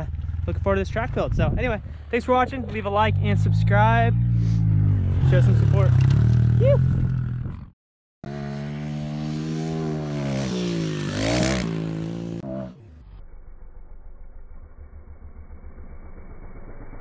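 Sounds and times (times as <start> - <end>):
small motorcycle engine revving: 2.6 - 17.0.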